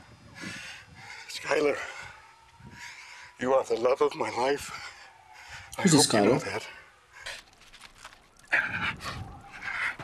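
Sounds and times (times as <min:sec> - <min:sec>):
man panting heavily: 0:00.0 - 0:03.4, 0:04.6 - 0:05.8, 0:08.5 - 0:10.0.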